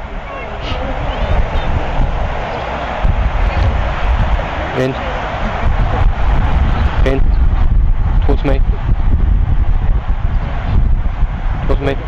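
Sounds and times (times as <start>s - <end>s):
people's voices: 0.0s - 7.6s
low outdoor rumble: 0.0s - 12.0s.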